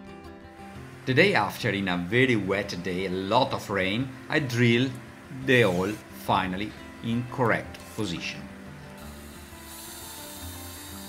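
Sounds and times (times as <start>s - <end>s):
background music: 0.0s - 11.0s
cordless drill boring fibreglass: 0.5s - 11.0s.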